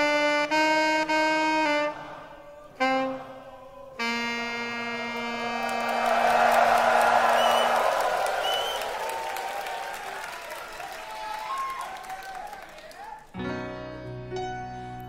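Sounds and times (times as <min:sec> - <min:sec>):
tenor saxophone long note: 0:00.0 - 0:02.2, 0:02.8 - 0:06.6
audience applause and cheering: 0:05.2 - 0:13.4
crowd whistles: 0:05.4 - 0:12.7.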